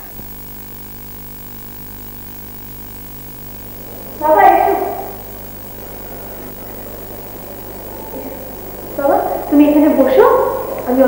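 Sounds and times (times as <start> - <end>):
low mains hum and hiss: 0.0 - 11.0
person speaking: 4.0 - 5.6.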